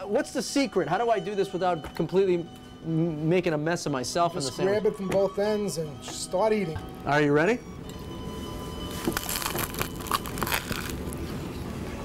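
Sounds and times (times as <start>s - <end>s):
faint background music: 0.0s - 12.0s
crunching and chewing sandwich: 8.9s - 11.3s.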